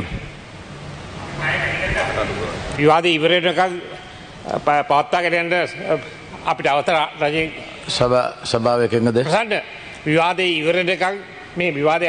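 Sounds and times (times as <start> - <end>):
man speaking into a microphone: 1.4 - 12.0.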